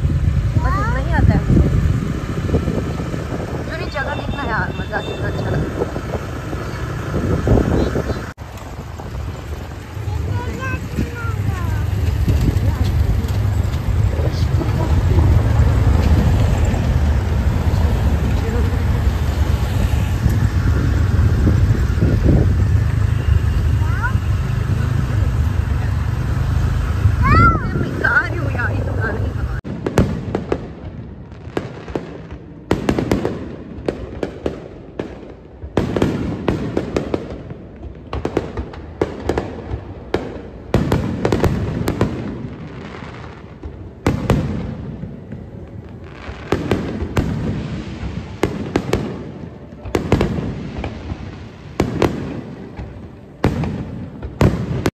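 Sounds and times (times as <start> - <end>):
fireworks bursting and crackling: 0.0 - 54.9
wind noise: 0.0 - 54.9
onlookers' voices: 0.1 - 29.7
scooter engine: 5.1 - 29.6.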